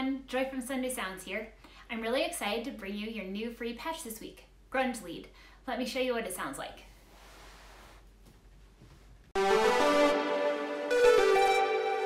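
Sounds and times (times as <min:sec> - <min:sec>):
low steady hiss: 0:00.0 - 0:09.4.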